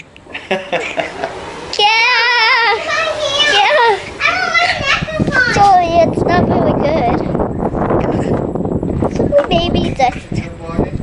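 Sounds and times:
girl talking and vocalizing: 1.7s - 7.4s, 9.1s - 10.4s.

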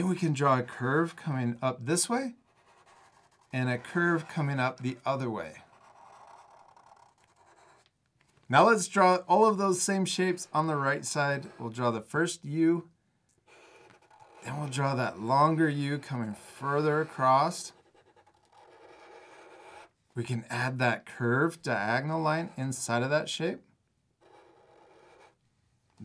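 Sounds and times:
marker scratching on paper: 2.0s - 7.9s, 9.3s - 12.4s, 13.4s - 20.0s, 21.7s - 23.1s, 24.2s - 26.0s.

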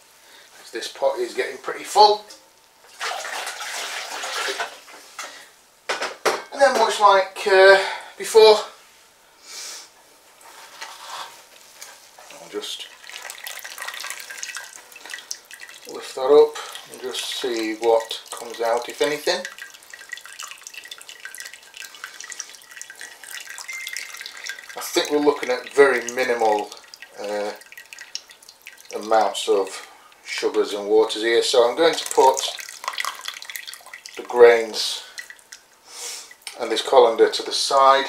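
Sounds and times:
liquid dripping into a pot: 11.6s - 36.6s
water splashing through grain: 12.3s - 29.8s, 31.2s - 35.6s.

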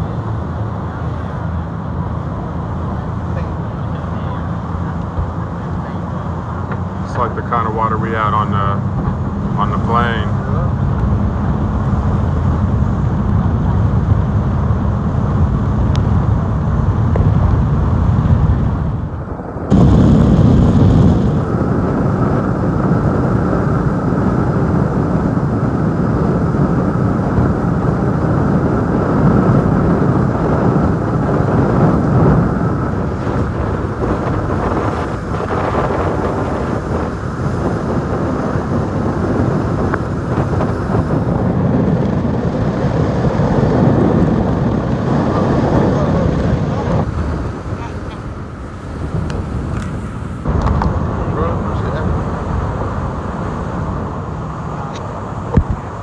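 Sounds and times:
speedboat engine: 0.0s - 56.0s
wind buffeting microphone: 0.0s - 56.0s.

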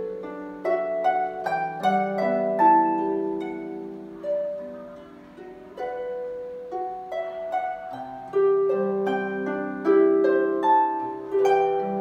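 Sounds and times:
harp melody: 0.0s - 12.0s.

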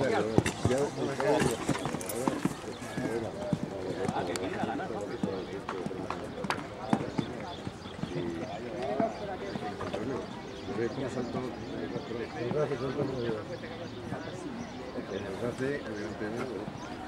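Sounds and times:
background voices talking: 0.0s - 17.0s.

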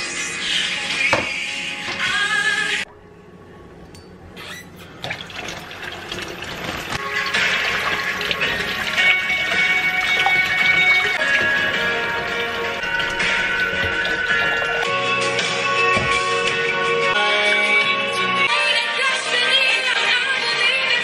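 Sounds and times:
water splashing over tomatoes: 5.0s - 14.9s
faucet water running into sink: 5.0s - 15.0s
background music: 7.0s - 21.0s.

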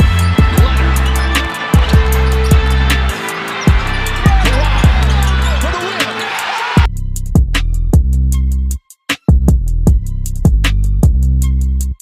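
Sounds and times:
hip hop backing track: 0.0s - 12.0s.

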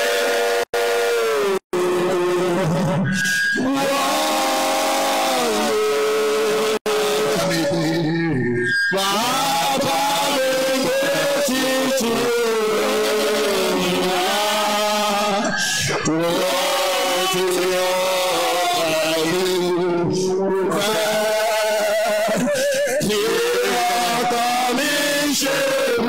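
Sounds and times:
congregation praying aloud: 3.5s - 26.0s.

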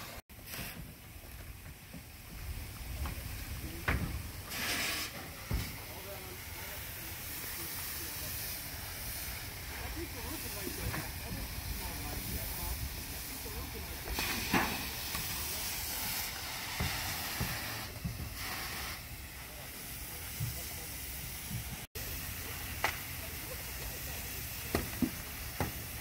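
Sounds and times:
hose water spray hissing: 0.0s - 26.0s.

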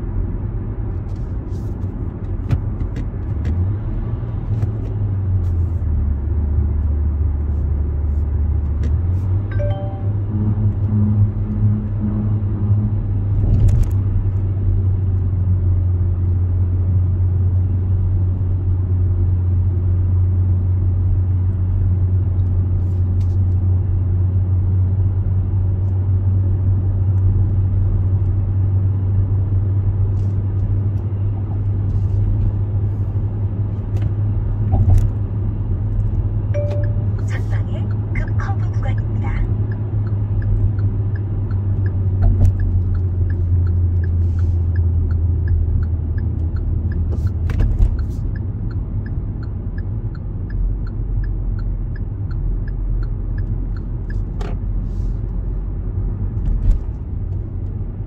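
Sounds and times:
car engine and tyre drone: 0.0s - 58.0s.

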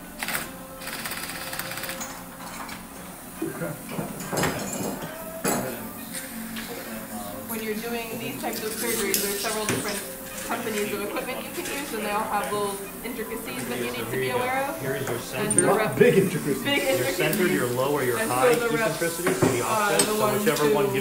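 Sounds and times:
background music: 0.0s - 21.0s
muffled talk: 3.4s - 21.0s
metal instruments clinking: 15.3s - 15.8s.

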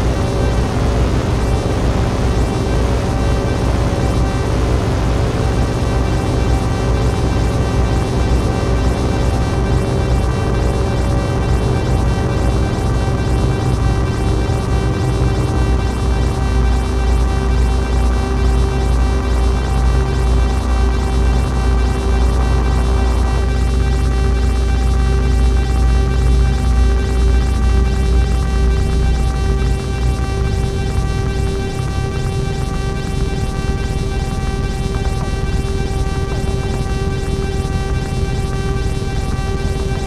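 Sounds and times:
synthesizer drone: 0.0s - 40.0s
heavy synth bass: 21.2s - 40.0s.

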